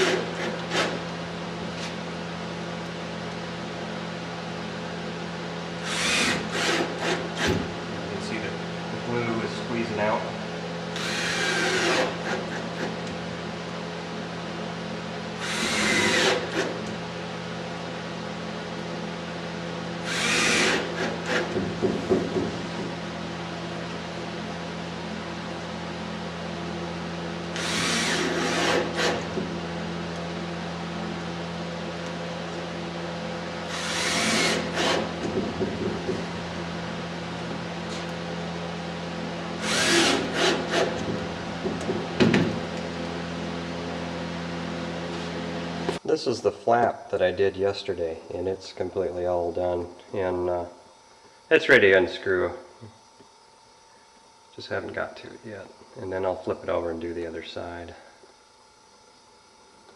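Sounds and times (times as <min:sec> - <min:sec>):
cordless drill driving screws: 0:00.0 - 0:01.0, 0:05.8 - 0:07.6, 0:10.9 - 0:13.0, 0:15.4 - 0:16.8, 0:20.0 - 0:21.6, 0:27.5 - 0:29.3, 0:33.7 - 0:35.2, 0:39.6 - 0:41.0.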